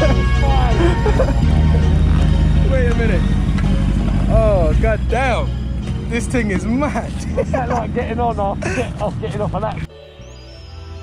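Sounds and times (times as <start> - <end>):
motorcycle engine idling: 0.9 - 6.2.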